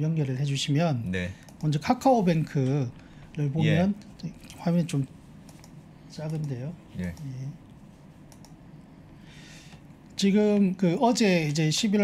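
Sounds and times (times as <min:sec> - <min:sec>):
person speaking a word: 0:03.6 - 0:03.9.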